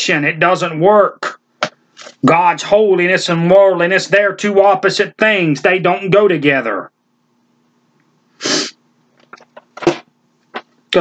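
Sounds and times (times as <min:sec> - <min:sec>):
man sneezing: 0:08.4 - 0:08.8.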